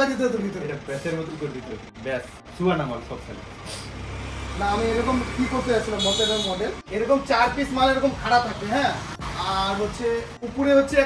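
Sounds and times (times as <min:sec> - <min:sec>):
passing vehicle engine rumble: 0:00.0 - 0:11.0
man speaking: 0:04.6 - 0:11.0.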